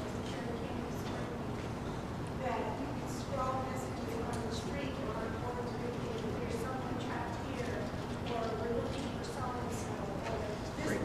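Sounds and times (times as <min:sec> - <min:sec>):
distant echoing man speaking: 0:10.8 - 0:11.0.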